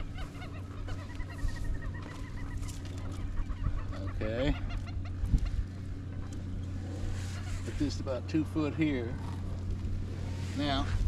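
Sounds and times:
scattered bird calls: 0.0s - 11.0s.

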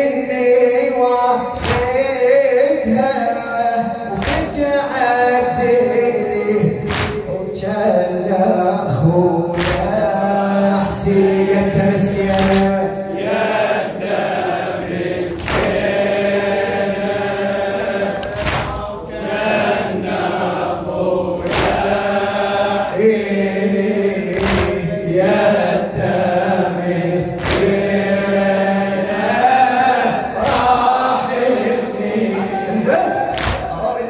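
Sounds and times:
man chanting into a microphone: 0.0s - 14.1s, 17.7s - 20.1s, 21.7s - 34.0s
group of men chanting: 0.0s - 34.0s.

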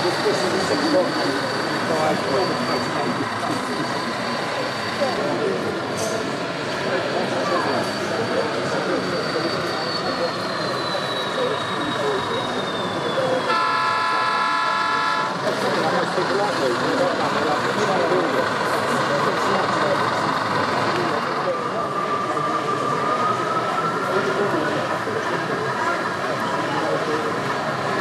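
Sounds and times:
crowd chatter: 0.0s - 28.0s
model locomotive horn: 13.4s - 15.4s.

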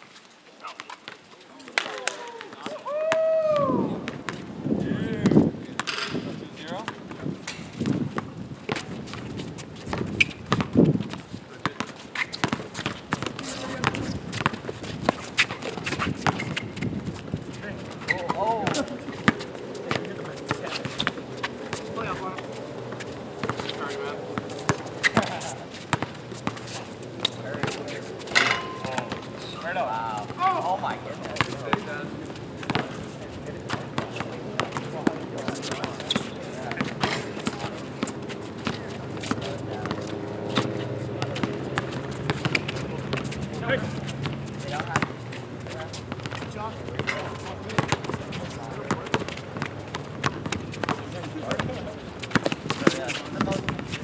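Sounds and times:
shoes on court: 0.0s - 54.0s
players calling out: 1.5s - 4.3s, 17.4s - 53.7s
basketball bouncing: 9.9s - 16.7s, 24.4s - 26.6s, 32.6s - 32.9s, 44.2s - 45.2s, 46.1s - 53.8s.

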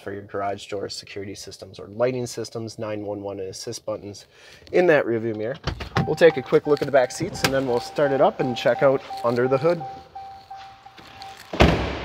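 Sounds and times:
truck door shutting: 11.5s - 12.0s.

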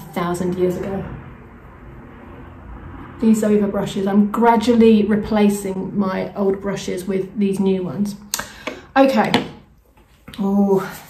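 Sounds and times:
low steady rumble: 0.0s - 8.3s.

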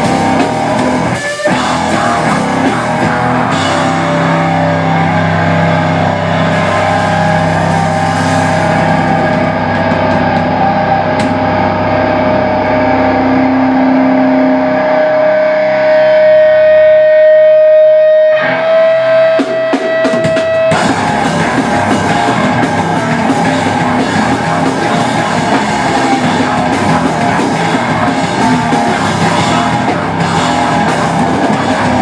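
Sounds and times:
bass guitar chords: 0.0s - 32.0s
distorted electric guitar: 0.0s - 32.0s
drum hits: 6.4s - 11.6s, 19.2s - 32.0s.

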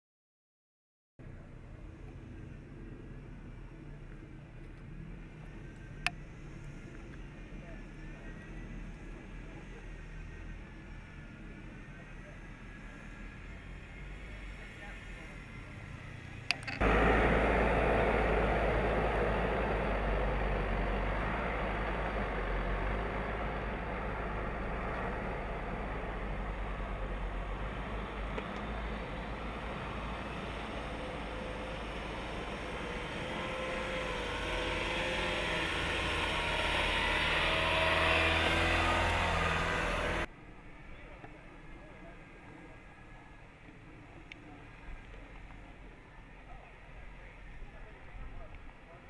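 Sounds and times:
car engine running: 16.3s - 40.3s.

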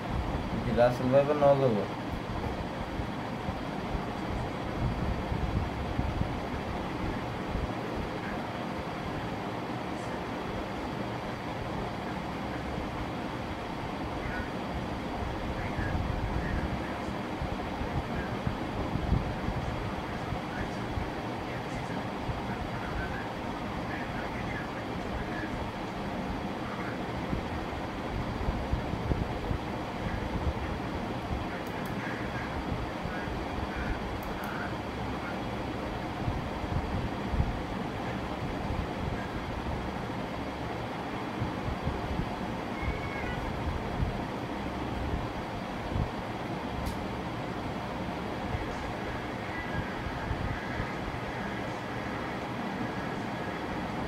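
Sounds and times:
low rumbling background noise: 0.0s - 54.0s.

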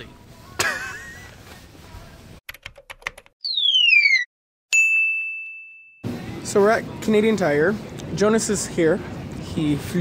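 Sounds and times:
falling whistle-like sweep: 3.5s - 4.3s
bright ding: 4.7s - 6.0s.

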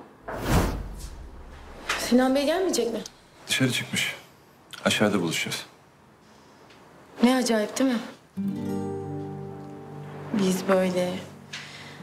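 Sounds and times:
acoustic guitar chord strummed: 8.4s - 12.0s.

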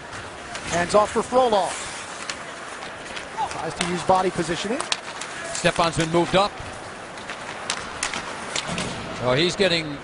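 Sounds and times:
crowd murmur: 0.0s - 9.3s
hockey sticks and puck clacking: 0.0s - 9.4s.

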